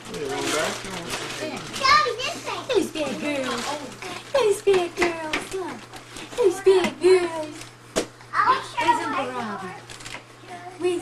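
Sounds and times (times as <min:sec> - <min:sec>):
children and adults talking: 0:00.0 - 0:11.0
faint steady hum: 0:00.0 - 0:11.0.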